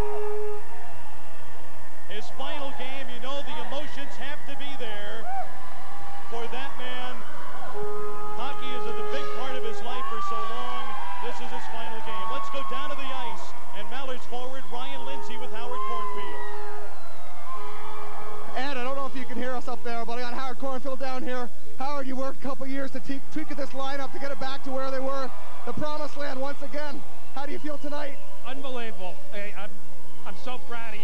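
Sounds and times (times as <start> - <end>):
music with long held notes: 0.0 - 1.6
crowd celebrating: 0.0 - 21.0, 22.9 - 31.0.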